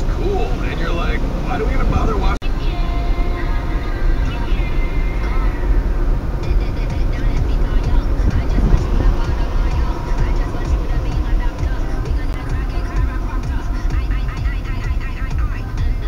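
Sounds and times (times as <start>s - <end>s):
car tyres and engine rumble: 0.0s - 16.0s
faint music: 0.0s - 16.0s.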